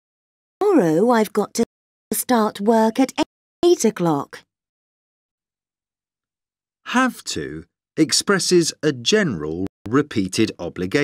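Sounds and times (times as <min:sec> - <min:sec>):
narrator speaking: 0:06.9 - 0:11.0.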